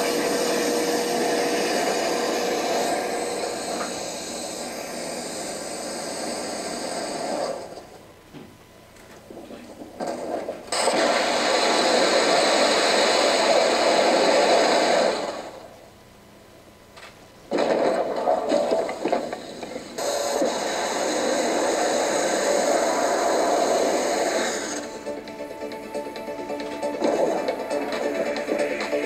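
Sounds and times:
rocket engine roar: 0.0 - 7.9, 9.3 - 15.7, 17.5 - 25.2.

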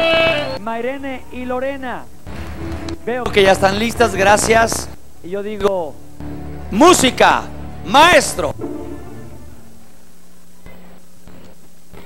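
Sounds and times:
low hum and hiss: 0.6 - 12.0.

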